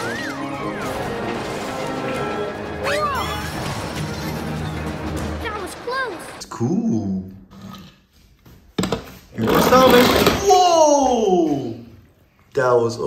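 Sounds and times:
loud noisy burst: 0.3 - 6.4.

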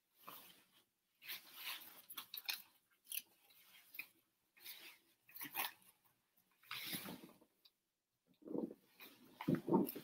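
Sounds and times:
fabric rustling: 0.0 - 7.6.

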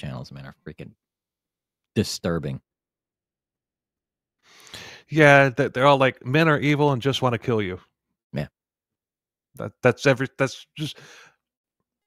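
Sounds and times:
man speaking: 0.0 - 1.0, 2.0 - 2.6, 5.0 - 7.8, 9.6 - 11.1
man breathing into microphone: 4.5 - 5.1.

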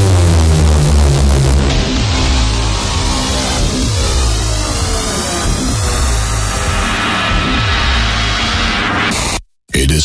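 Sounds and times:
deep bass note: 0.0 - 8.9
falling tones sweeping down: 0.0 - 9.1.

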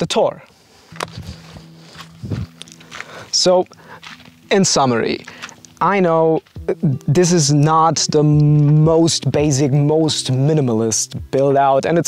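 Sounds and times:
soft music with low notes: 0.0 - 12.0
light footsteps: 0.9 - 7.1.

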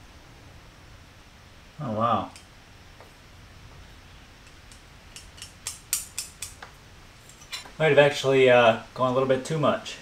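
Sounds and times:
knife blade clicking on anvil: 4.5 - 6.6.

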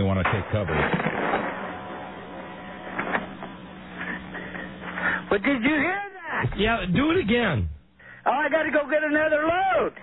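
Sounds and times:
telephone line hiss and hum: 0.0 - 10.0.

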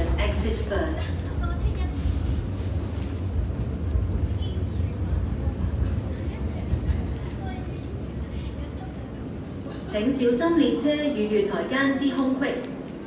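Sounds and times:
crowd chatter: 0.0 - 13.0
underground train rumble: 0.0 - 13.0.

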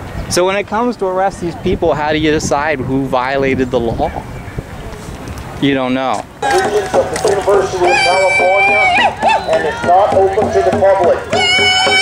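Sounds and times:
overlapping indistinct voices: 6.1 - 12.0.

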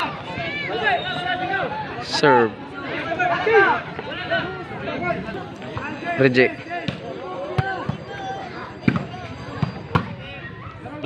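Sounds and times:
crowd chatter: 0.0 - 11.0
volleyball being struck: 8.8 - 10.2.

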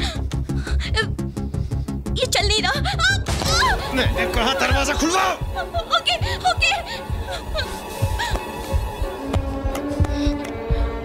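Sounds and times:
woman sobbing and whimpering: 0.0 - 1.2, 2.6 - 3.9, 5.7 - 8.8
tense film score with pulsing beat: 0.0 - 11.0.

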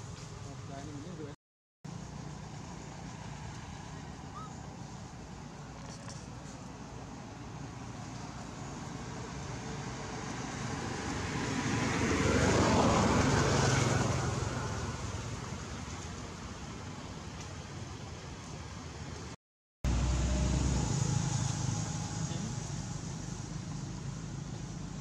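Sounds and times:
motor vehicle passing by: 2.0 - 16.0, 19.9 - 25.0.

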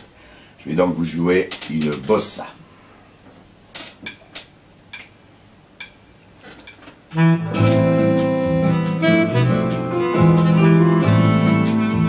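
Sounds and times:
bossa nova music: 7.1 - 12.0.

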